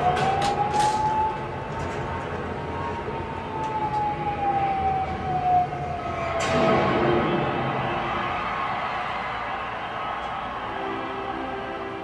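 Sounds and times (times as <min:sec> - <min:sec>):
siren-like wailing tone: 0:00.0 - 0:08.9.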